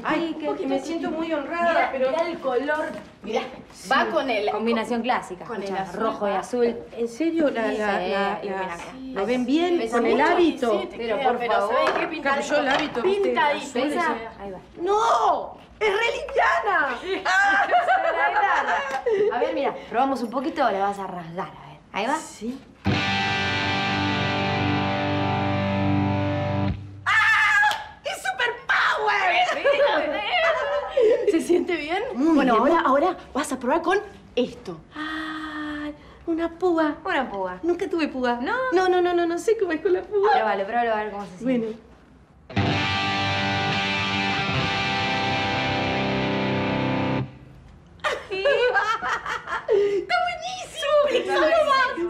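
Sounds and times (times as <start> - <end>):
electric guitar chord ringing: 22.9 - 27.0, 42.5 - 47.4.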